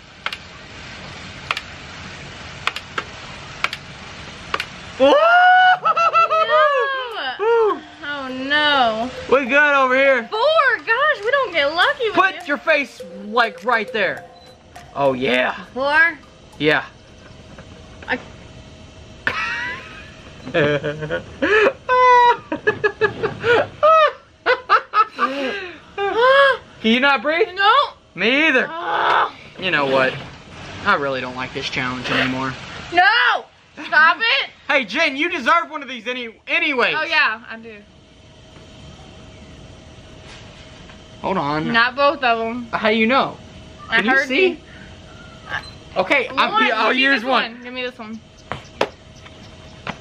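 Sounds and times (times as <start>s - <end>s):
steady hiss: 0.0s - 28.7s, 29.4s - 36.9s
sharp irregular clicks: 1.5s - 1.7s, 2.6s - 3.0s, 3.6s - 3.8s
adults laughing and shrieking: 5.0s - 7.9s
person shouting: 5.0s - 7.9s, 28.7s - 29.4s
shrieking laughter: 5.0s - 7.9s, 19.2s - 26.7s
breathless whoops: 5.0s - 8.0s.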